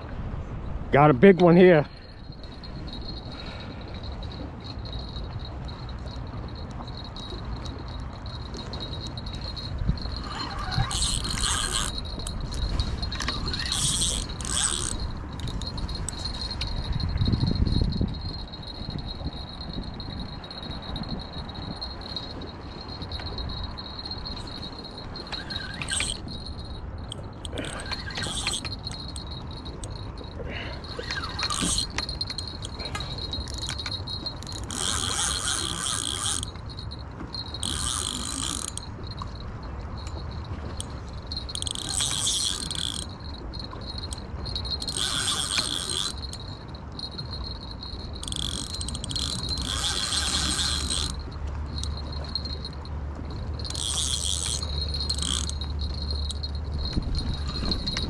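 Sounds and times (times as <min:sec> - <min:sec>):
fishing reel buzzing: 0:02.1 - 0:58.0.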